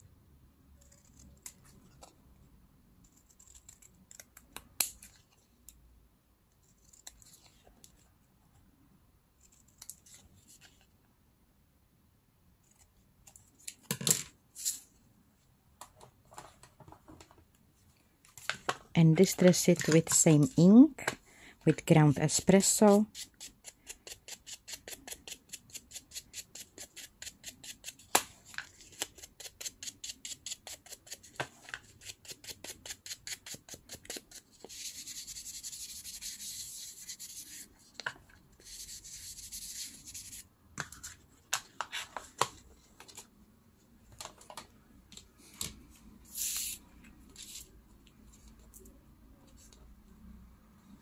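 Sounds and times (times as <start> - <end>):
scratchy rubbing on paper: 32.0 - 37.7, 38.6 - 40.4.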